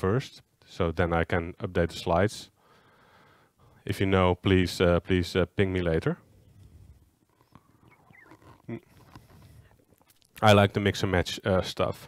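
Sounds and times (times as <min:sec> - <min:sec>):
short vocal sound: 0:07.6 - 0:09.0.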